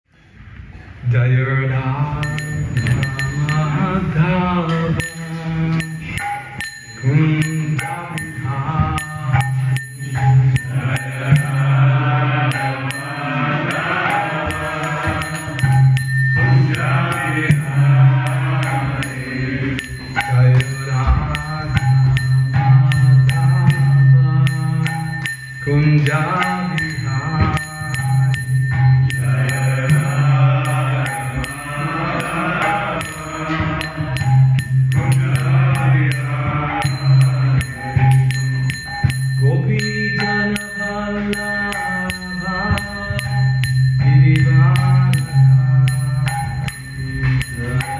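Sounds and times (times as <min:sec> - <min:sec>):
man chanting: 0:01.0 - 0:06.4, 0:16.4 - 0:28.2
small hand cymbals struck: 0:01.8 - 0:47.9.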